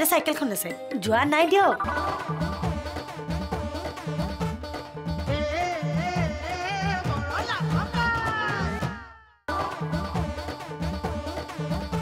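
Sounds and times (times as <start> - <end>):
tv theme music: 0.0 - 12.0.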